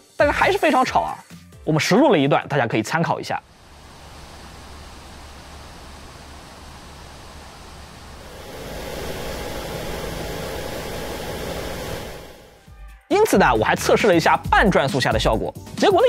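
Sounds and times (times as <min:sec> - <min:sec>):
faint steady whine: 0:03.4 - 0:12.7
laptop cooler fan blowing: 0:03.5 - 0:12.6
laptop cooling fans rushing: 0:03.5 - 0:12.6.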